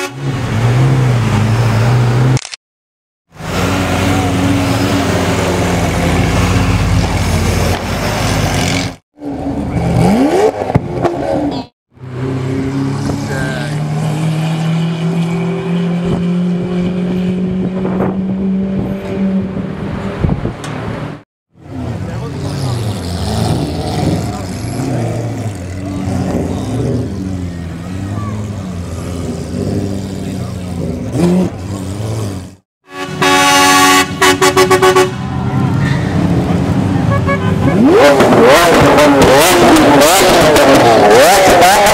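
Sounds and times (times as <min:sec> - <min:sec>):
sports car engines revving: 0:03.4 - 0:41.9
crowd voices: 0:35.1 - 0:36.2.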